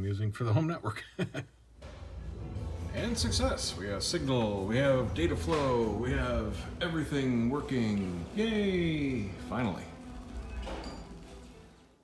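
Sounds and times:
low rumble: 1.6s - 10.5s
faint film music: 1.7s - 12.0s.

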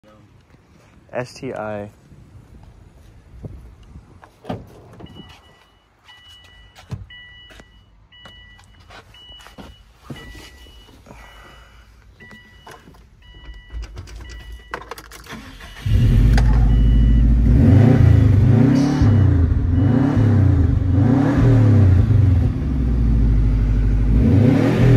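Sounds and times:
car engine starting and revving: 15.2s - 24.9s
two-tone warning chime: 15.4s - 17.3s.

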